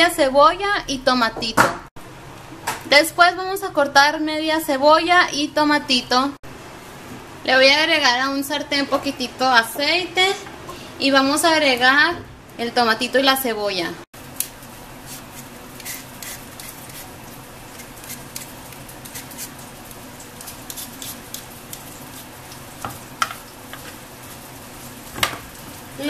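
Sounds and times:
vegetables sizzling in oil: 0:14.2 - 0:26.0.

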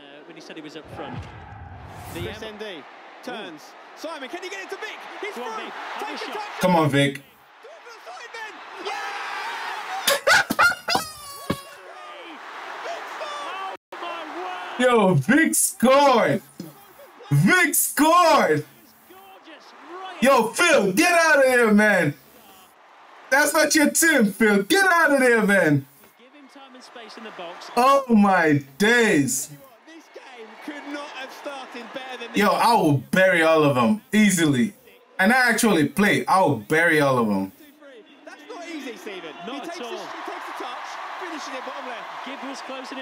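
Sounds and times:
stadium crowd noise: 0:00.0 - 0:43.0
excited crowd shouting: 0:00.1 - 0:32.9, 0:37.9 - 0:43.0
commentator talking: 0:05.2 - 0:07.3, 0:14.0 - 0:18.8, 0:20.1 - 0:22.2, 0:23.3 - 0:25.8, 0:27.2 - 0:29.6, 0:32.1 - 0:37.5.

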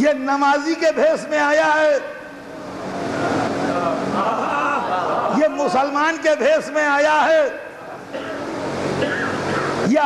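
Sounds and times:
murmur of audience voices: 0:02.4 - 0:05.8, 0:07.7 - 0:09.9
man speaking: 0:05.3 - 0:07.7.

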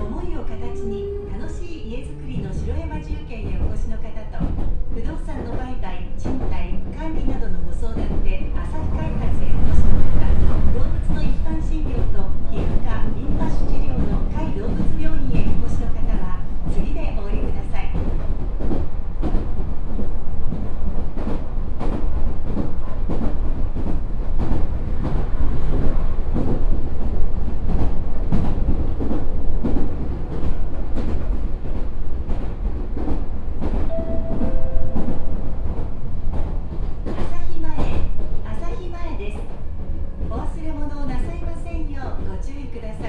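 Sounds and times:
train wheels rumbling on rail: 0:00.0 - 0:43.0
track clicks and knocks: 0:33.0 - 0:38.0.

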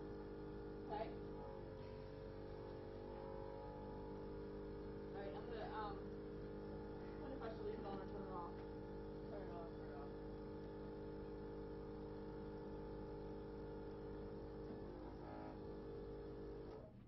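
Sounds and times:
machine hum with low rumble: 0:00.0 - 0:17.0.

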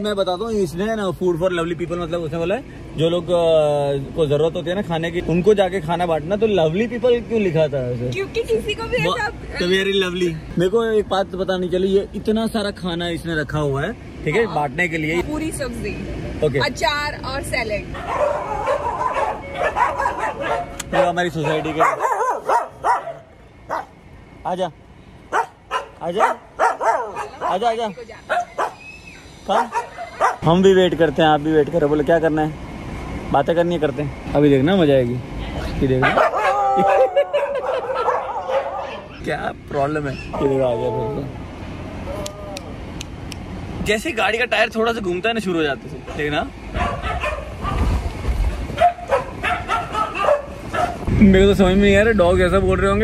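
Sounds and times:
moving car rumble: 0:00.0 - 0:53.0
dogs barking: 0:17.9 - 0:24.0, 0:25.3 - 0:28.9, 0:29.5 - 0:30.6, 0:36.0 - 0:39.4, 0:46.0 - 0:47.9, 0:48.6 - 0:51.1.

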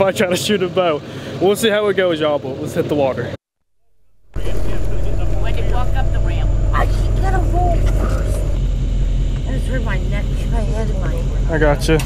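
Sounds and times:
engine idling: 0:04.3 - 0:12.0.

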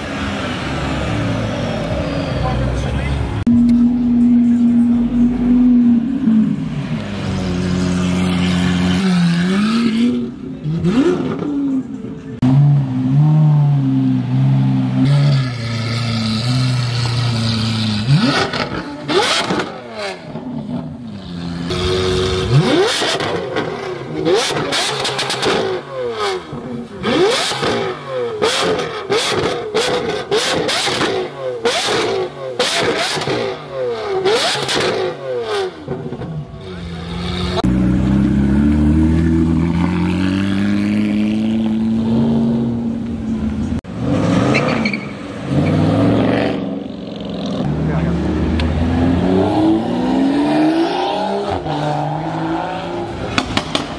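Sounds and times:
car engine revving in blips: 0:03.4 - 0:46.8.

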